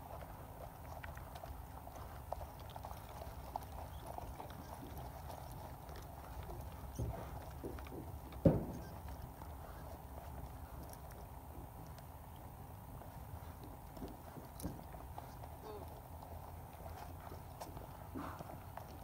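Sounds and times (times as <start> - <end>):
distant horse hoofbeats on turf: 0.0 - 19.0.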